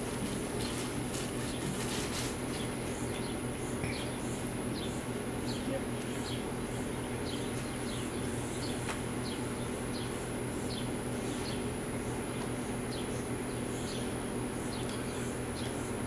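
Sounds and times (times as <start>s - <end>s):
high insect drone: 0.0s - 16.0s
low steady hum: 0.0s - 16.0s.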